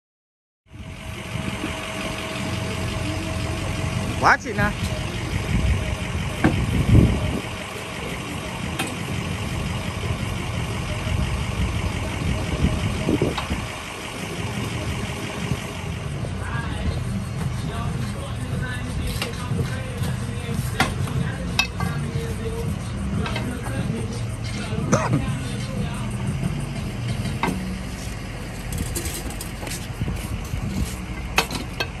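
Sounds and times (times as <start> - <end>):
vehicle engine idling: 0.7 - 32.0
knocks of wheel dollies: 17.4 - 32.0.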